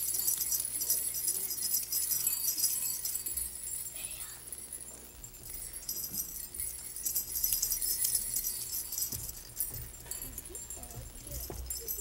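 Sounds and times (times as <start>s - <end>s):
jingle bells shaken: 0.0s - 12.0s.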